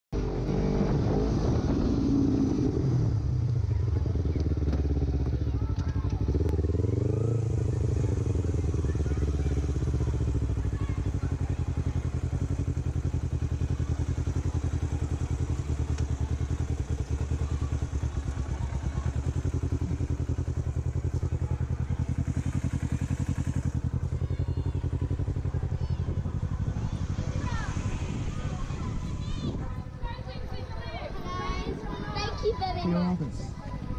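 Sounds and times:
motorcycle engine: 0.2 - 33.9.

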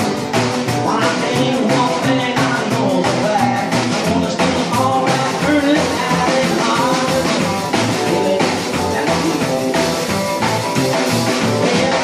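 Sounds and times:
acoustic guitar: 0.0 - 12.0
drum kit beat: 0.0 - 12.0
upright bass walking line: 0.0 - 12.0.

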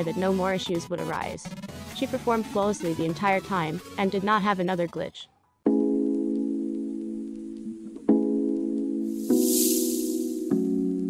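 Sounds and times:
background music held chords: 5.7 - 11.0
hissing whoosh: 9.2 - 10.5.

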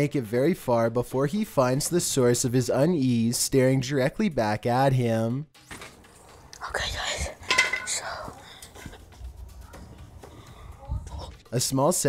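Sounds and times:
man whispering: 6.6 - 7.4.

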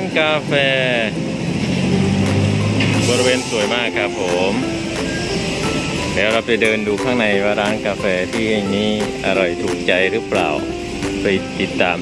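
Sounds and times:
vehicle engine passing by: 0.7 - 6.2
person speaking: 3.0 - 12.0.

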